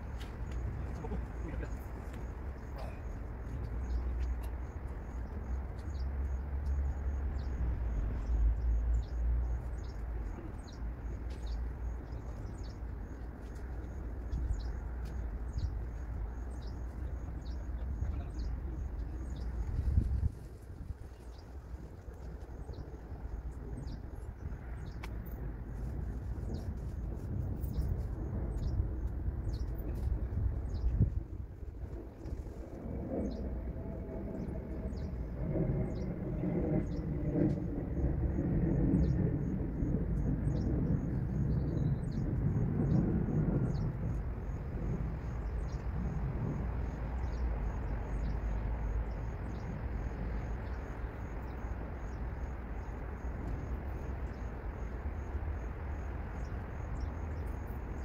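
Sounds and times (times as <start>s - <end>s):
steady low rumble: 0.0s - 58.0s
small birds chirping: 0.2s - 25.1s, 27.6s - 31.3s.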